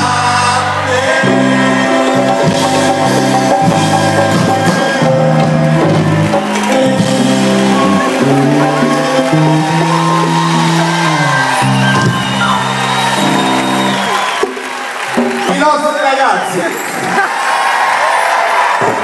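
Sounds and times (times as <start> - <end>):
live band music: 0.0 - 17.2
crowd shouting: 4.2 - 15.8, 16.8 - 19.0.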